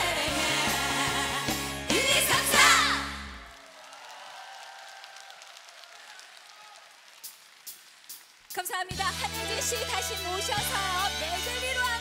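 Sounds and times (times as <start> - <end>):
audience applauding: 3.0 - 9.0.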